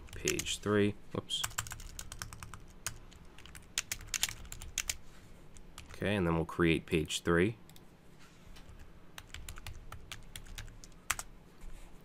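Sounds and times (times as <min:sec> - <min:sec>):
keyboard typing clicks: 0:01.4 - 0:05.0.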